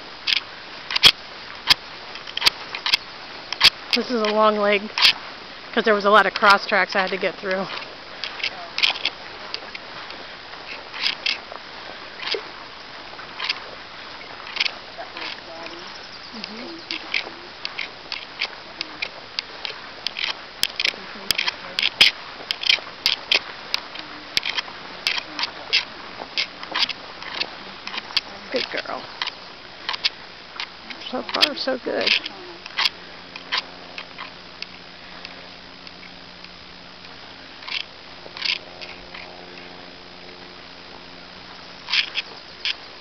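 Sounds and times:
footsteps through tall grass: 0:00.0 - 0:43.0
sharp clicks: 0:00.3 - 0:05.2, 0:14.2 - 0:39.7.

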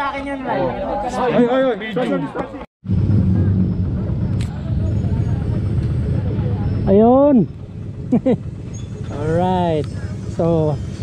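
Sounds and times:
motorcycle engine idling: 0:02.9 - 0:11.0.

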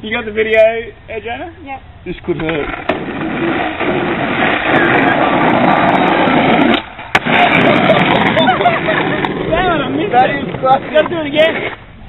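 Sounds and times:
skateboard landing clack: 0:02.4 - 0:09.5
skateboard wheels rolling on asphalt: 0:02.4 - 0:12.0.

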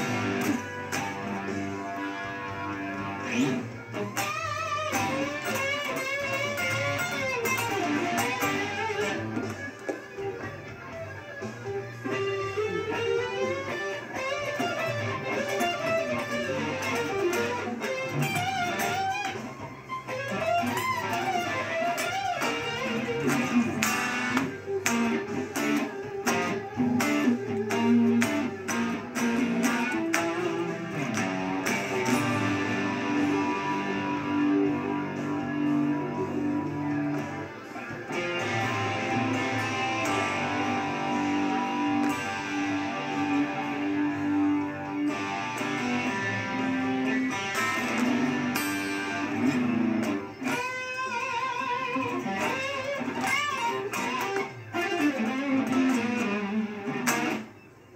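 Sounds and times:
electric guitar playing rock: 0:00.0 - 0:57.9.

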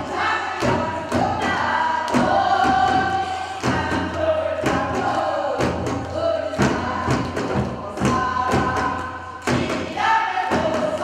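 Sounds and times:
barrel drums beating: 0:00.0 - 0:11.0
group singing in unison: 0:00.0 - 0:11.0.

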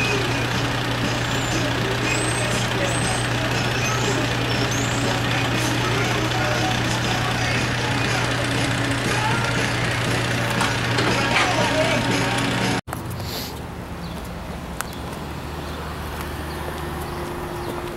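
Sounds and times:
diesel engine idling: 0:00.0 - 0:14.0, 0:14.6 - 0:17.9.

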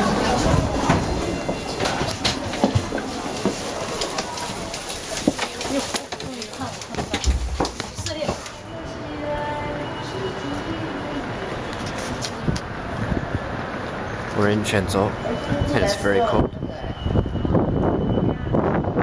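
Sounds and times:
indistinct background talk: 0:00.0 - 0:18.6
footsteps and luggage knocks: 0:00.3 - 0:08.6.

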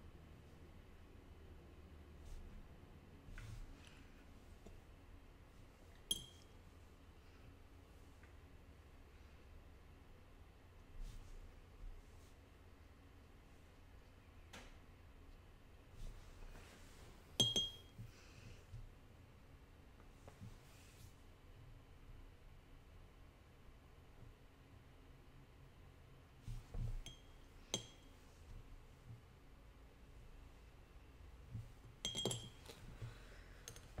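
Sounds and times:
paintbrush clinking on glass jar: 0:06.1 - 0:06.6, 0:17.4 - 0:17.9, 0:27.0 - 0:28.1, 0:32.0 - 0:32.8.

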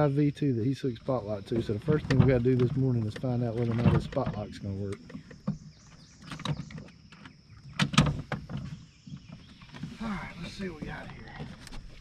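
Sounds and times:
knocks and clunks of motor handling: 0:01.5 - 0:12.0.

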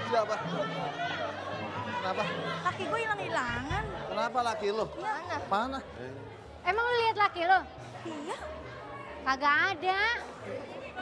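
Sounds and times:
people talking over each other: 0:00.0 - 0:11.0.

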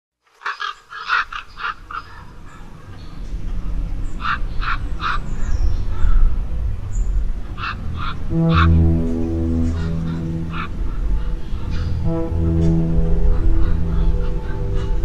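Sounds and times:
low rumble: 0:05.2 - 0:15.0.

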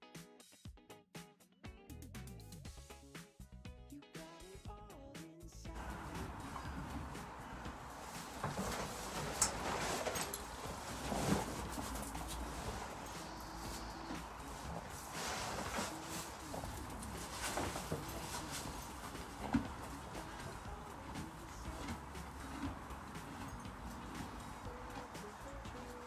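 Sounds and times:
knocks and rustles: 0:05.8 - 0:26.0.

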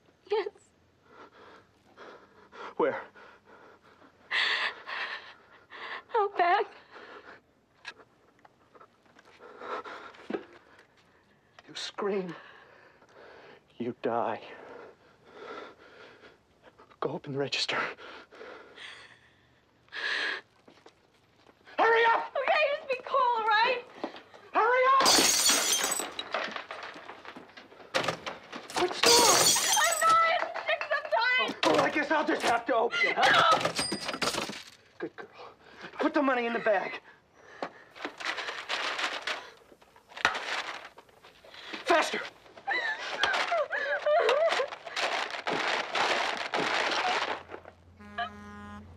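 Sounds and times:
paper money and bag rustling: 0:38.0 - 0:47.8
woman crying with shaky breathing: 0:42.6 - 0:45.2.

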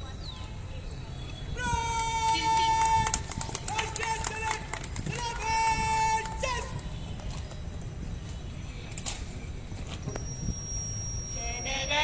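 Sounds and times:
crowd clapping: 0:02.0 - 0:07.7.

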